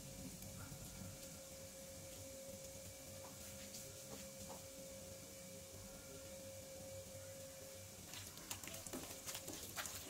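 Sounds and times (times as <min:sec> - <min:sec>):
faint high-pitched hum: 0:00.0 - 0:10.0
low hiss: 0:00.0 - 0:10.0.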